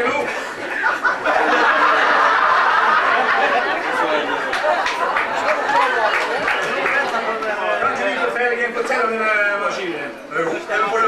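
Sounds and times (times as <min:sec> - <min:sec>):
audience laughing and chattering: 0:00.0 - 0:09.5.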